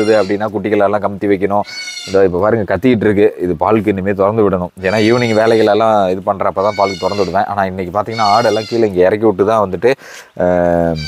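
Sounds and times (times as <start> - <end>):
goats bleating: 0.0 - 0.6, 1.6 - 2.3, 4.8 - 9.0.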